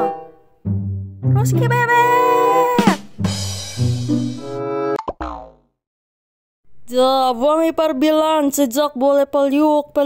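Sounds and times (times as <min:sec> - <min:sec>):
music with held notes: 0:00.0 - 0:05.0.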